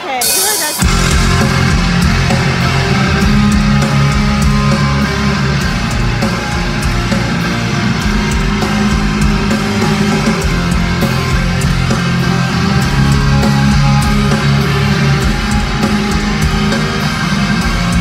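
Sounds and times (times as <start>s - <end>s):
distorted electric guitars: 0.0s - 18.0s
drum hits: 0.3s - 12.2s.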